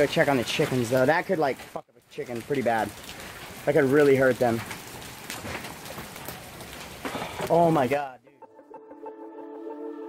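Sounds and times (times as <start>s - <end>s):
hailstones striking: 0.0s - 8.1s
steady rain: 0.0s - 8.2s.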